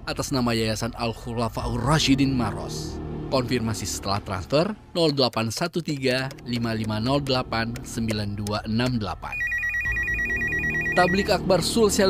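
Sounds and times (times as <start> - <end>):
electronic telephone ringing: 9.3 - 11.7.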